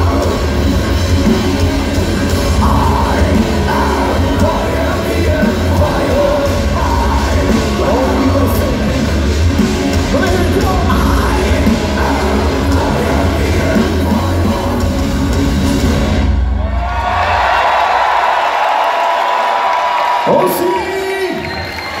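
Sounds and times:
metal band playing: 0.0s - 18.2s
crowd cheering and whooping: 16.2s - 22.0s.

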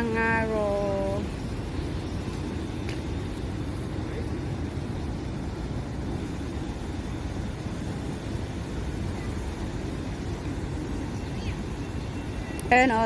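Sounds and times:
road traffic rumble: 0.0s - 13.0s.

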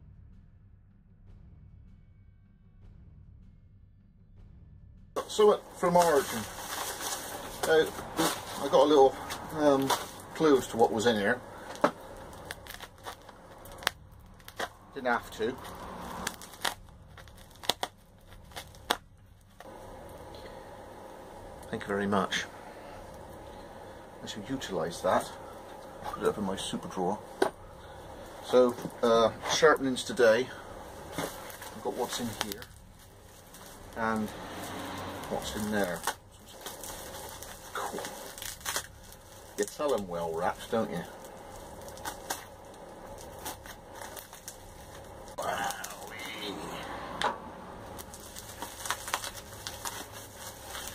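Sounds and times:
steady hiss: 5.2s - 16.7s, 19.5s - 50.9s
plastic crinkling: 5.2s - 50.9s.

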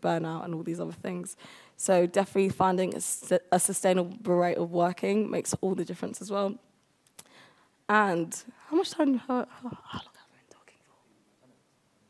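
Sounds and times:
faint whispering: 9.6s - 11.6s.

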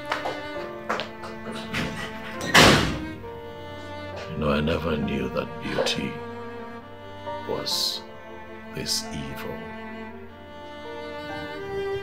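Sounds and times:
soft background music: 0.0s - 12.0s
door slamming shut: 1.2s - 3.3s.

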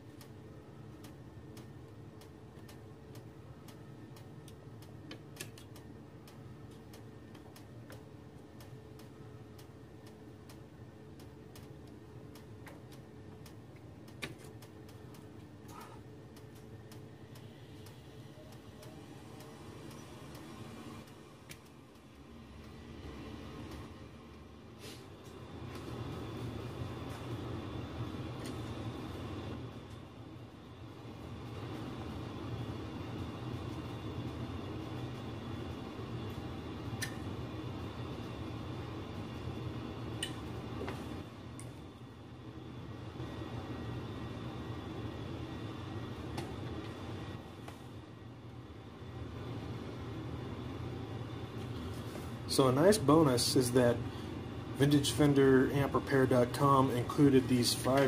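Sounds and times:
furnace rumbling: 0.0s - 58.0s.

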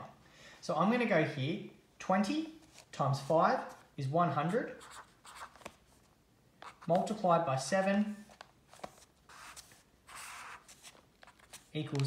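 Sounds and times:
pen scratching on paper: 4.4s - 5.7s, 6.6s - 7.1s, 9.3s - 11.7s.

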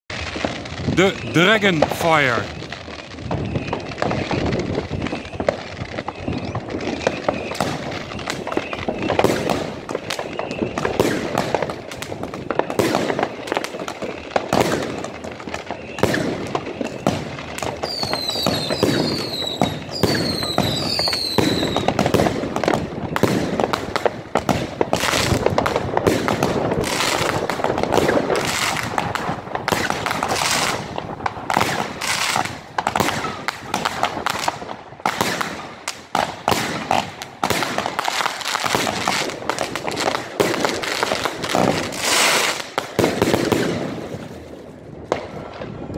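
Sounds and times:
firework shots and bursts: 0.1s - 45.9s
falling firework whistles: 2.6s - 11.6s, 14.5s - 23.6s, 25.0s - 34.5s, 41.6s - 44.4s.

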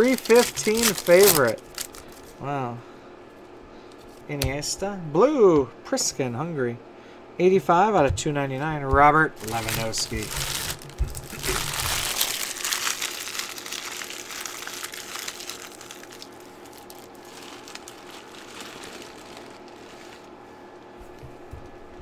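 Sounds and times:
foil wrappers crinkling: 0.0s - 2.4s, 9.4s - 20.4s
faint steady hum: 0.0s - 22.0s.

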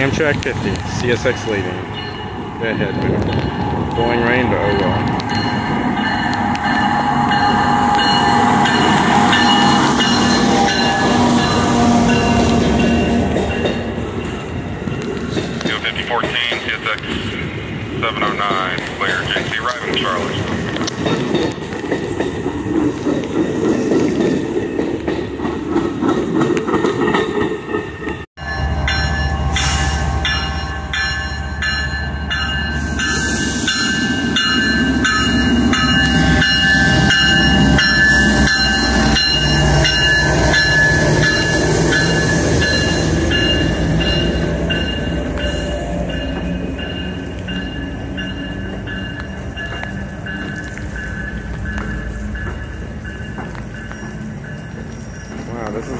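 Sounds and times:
diesel locomotive rumbling: 0.0s - 55.9s
train wheels clicking over rail joints: 18.1s - 28.2s, 33.9s - 55.9s.

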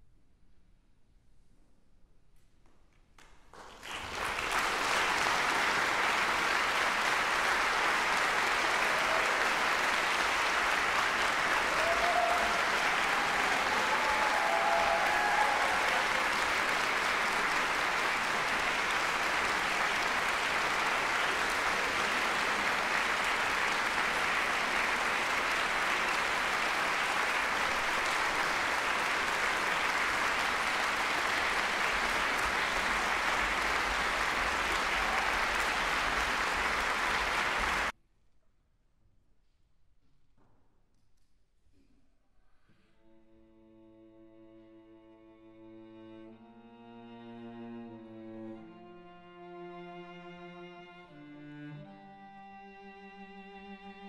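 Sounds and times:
audience applauding: 3.5s - 37.9s.

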